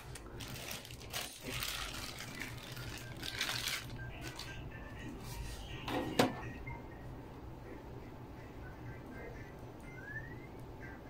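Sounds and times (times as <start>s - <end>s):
rustling and handling noises: 0.0s - 6.4s
low steady hum: 0.0s - 11.0s.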